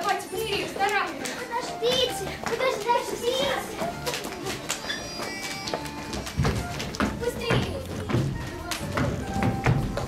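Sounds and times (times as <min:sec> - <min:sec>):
young girl speaking: 0:01.4 - 0:03.8, 0:07.2 - 0:07.9.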